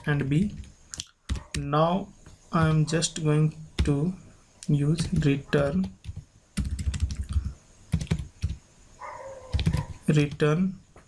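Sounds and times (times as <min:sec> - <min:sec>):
computer keyboard clicks: 0:05.0 - 0:08.6, 0:09.5 - 0:10.4.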